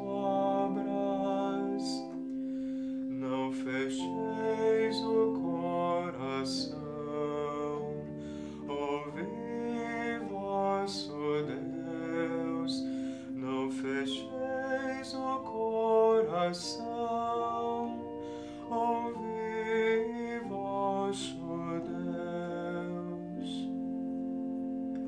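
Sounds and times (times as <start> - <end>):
man singing a psalm: 0.0 - 2.2, 3.1 - 23.8
electronic keyboard chords: 0.0 - 25.0.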